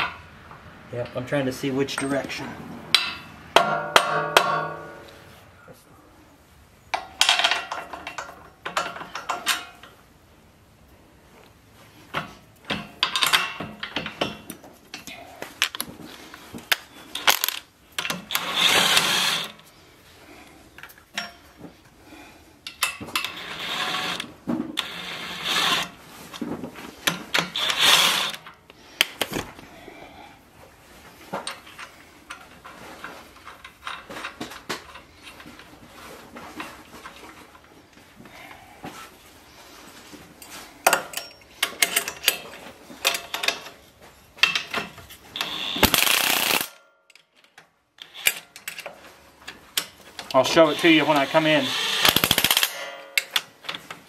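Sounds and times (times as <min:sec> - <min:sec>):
metallic clinks of bolts and nuts: 0:01.9 - 0:05.1, 0:12.6 - 0:15.9, 0:20.8 - 0:21.6, 0:40.8 - 0:50.4, 0:52.0 - 0:53.9.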